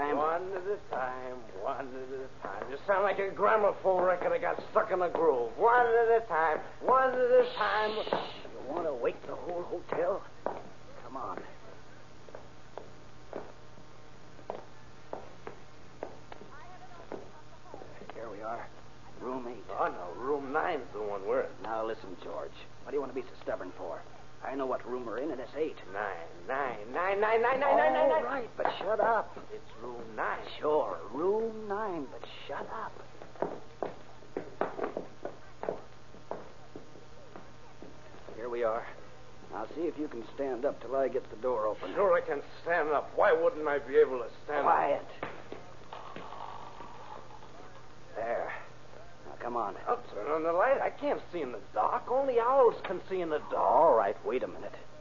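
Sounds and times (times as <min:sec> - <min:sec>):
recording hum and hiss: 0:00.0 - 0:55.0
footsteps on hallway floor: 0:02.4 - 0:11.6, 0:12.2 - 0:18.2, 0:32.5 - 0:38.4.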